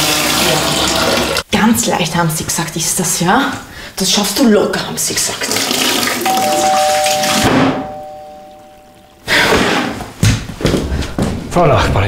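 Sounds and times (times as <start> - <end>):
water spraying from tap: 0.0 - 1.4, 5.0 - 7.0
two-tone doorbell chime: 6.3 - 9.3.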